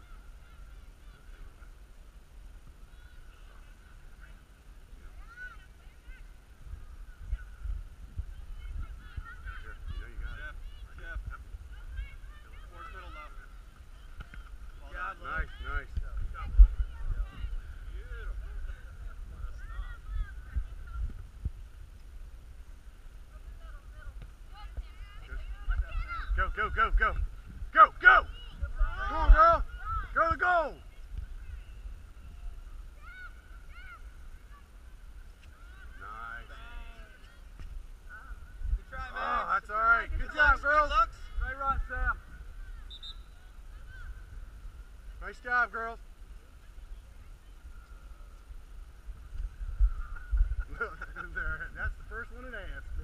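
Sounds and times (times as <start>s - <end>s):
faint distant voices: 0.0s - 53.0s
wind buffeting microphone: 6.1s - 12.7s, 15.6s - 30.2s, 46.9s - 53.0s.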